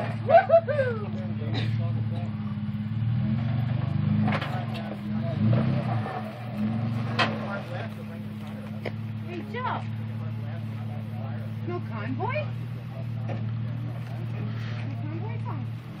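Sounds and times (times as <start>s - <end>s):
car engine revving under load: 0.0s - 16.0s.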